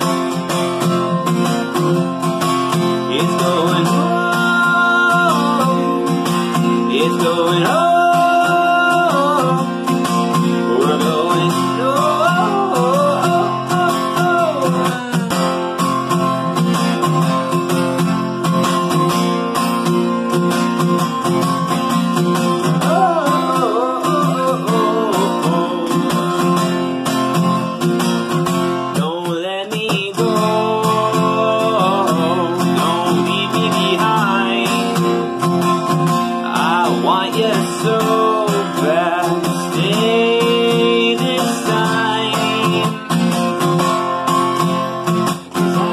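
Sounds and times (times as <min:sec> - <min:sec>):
acoustic guitar strumming: 0:00.0 - 0:45.9
man singing: 0:02.4 - 0:16.4, 0:21.9 - 0:27.2, 0:28.8 - 0:45.9.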